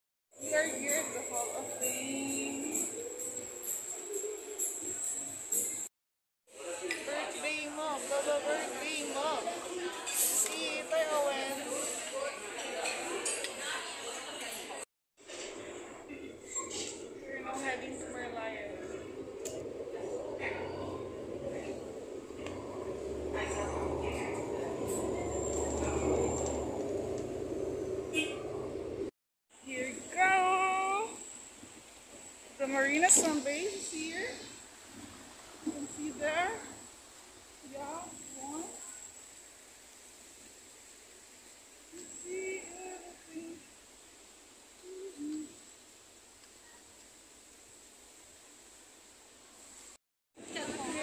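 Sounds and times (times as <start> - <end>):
bus engine and road rumble: 15.3 - 29.1.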